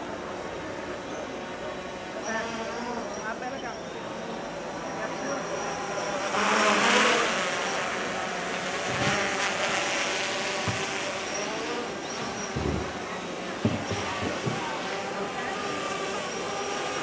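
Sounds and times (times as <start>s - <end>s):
crowd voices: 0.0s - 17.0s.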